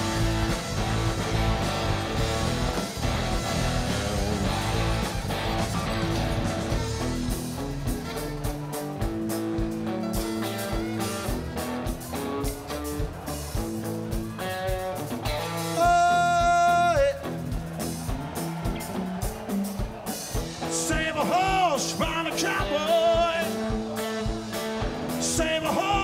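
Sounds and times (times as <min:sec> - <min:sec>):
fiddle: 0:00.0 - 0:11.8
electric guitars: 0:00.0 - 0:26.0
steady drum beat: 0:00.0 - 0:26.0.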